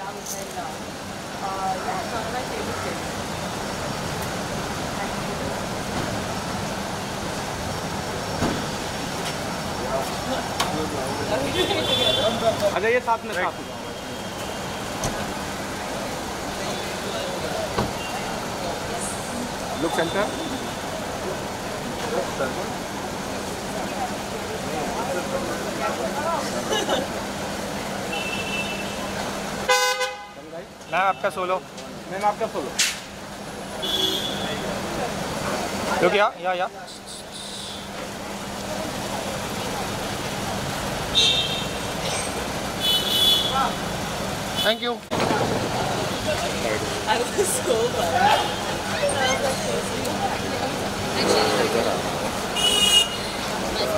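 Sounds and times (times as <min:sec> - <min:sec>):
street traffic: 0:00.0 - 0:53.9
faint voices: 0:44.9 - 0:53.9.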